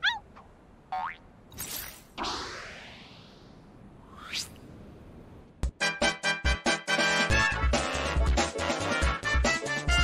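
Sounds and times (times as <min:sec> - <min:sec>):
sudden whoosh: 0:02.2 - 0:04.6.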